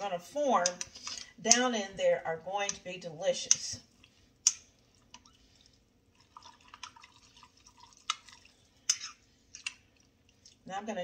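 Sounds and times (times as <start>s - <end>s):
wet clicks and scrapes: 3.5s - 10.7s.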